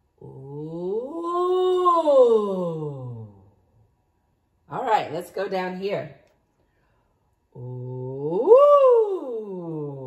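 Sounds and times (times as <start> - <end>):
woman singing sliding ooh: 0.0 - 3.6, 7.5 - 10.0.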